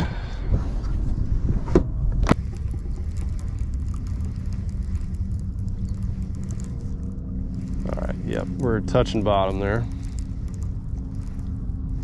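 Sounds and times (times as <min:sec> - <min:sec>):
low steady rumble: 0:00.0 - 0:12.0
fishing reel ticking: 0:02.3 - 0:12.0.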